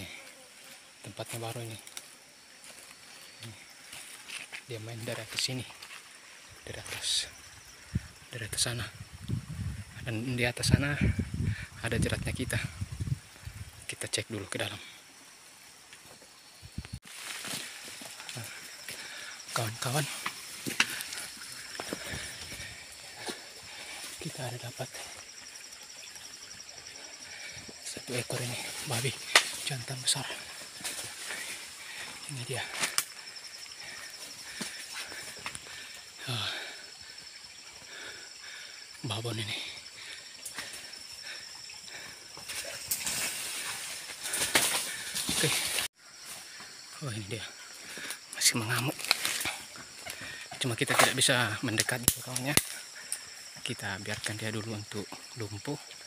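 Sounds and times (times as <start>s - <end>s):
footsteps on forest floor: 0.0s - 6.5s, 17.0s - 38.6s, 40.0s - 46.9s, 47.6s - 51.4s
forest background hiss: 0.0s - 56.0s
high drone of insects: 0.0s - 56.0s
brushing through undergrowth: 17.0s - 18.8s, 42.4s - 45.9s.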